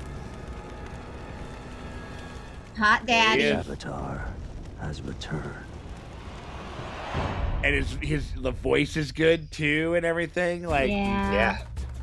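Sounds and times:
quiet soundtrack music: 0.0s - 5.9s, 7.6s - 12.0s.

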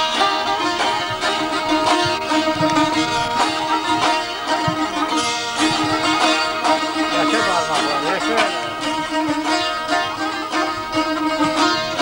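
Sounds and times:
plucked lutes playing rapidly: 0.0s - 12.0s.

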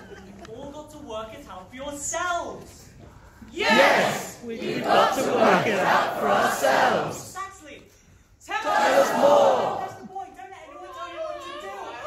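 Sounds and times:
crowd shouting in unison: 3.6s - 7.3s, 8.6s - 10.0s.

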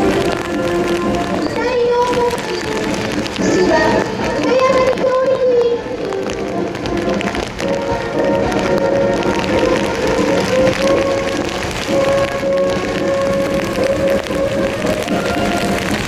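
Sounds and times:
heavy rain hiss: 0.0s - 16.0s.

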